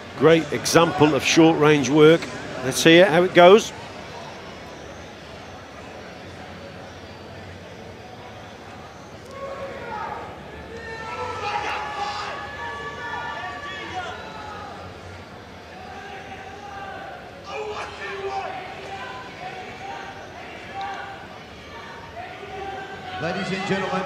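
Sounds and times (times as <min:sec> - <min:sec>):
crowd murmur: 0:00.0 - 0:24.0.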